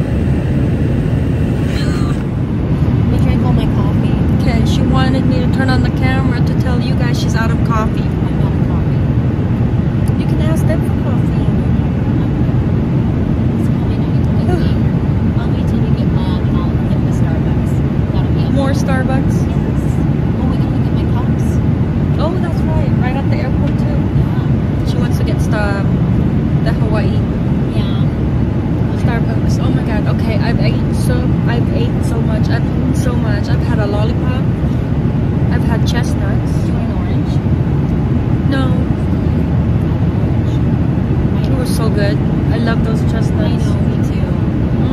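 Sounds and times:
airliner cabin engine roar: 0:00.0 - 0:44.9.

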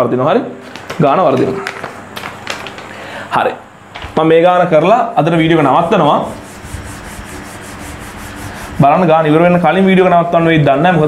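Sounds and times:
person speaking: 0:00.4 - 0:02.0, 0:02.7 - 0:11.0
whiteboard being wiped: 0:05.2 - 0:09.6.

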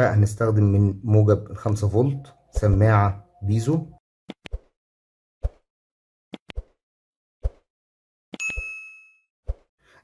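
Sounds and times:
bell ding: 0:08.4 - 0:09.3.

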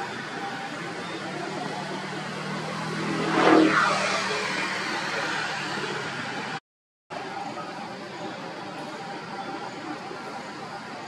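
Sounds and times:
vehicle passing by: 0:01.3 - 0:06.6.

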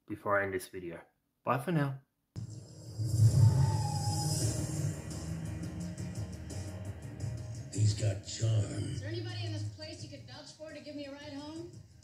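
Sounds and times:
low rumble: 0:02.4 - 0:07.0
faint tone sliding down: 0:02.9 - 0:05.8.

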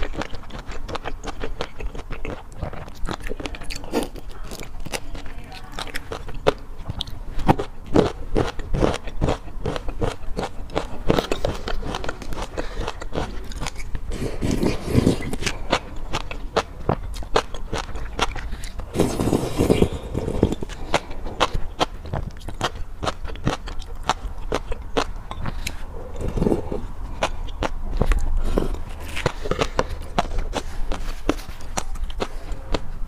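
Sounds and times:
wet chewing with crunches: 0:00.0 - 0:33.0.

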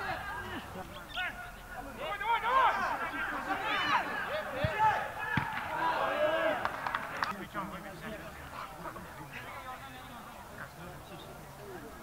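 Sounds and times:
players shouting: 0:00.0 - 0:07.2.

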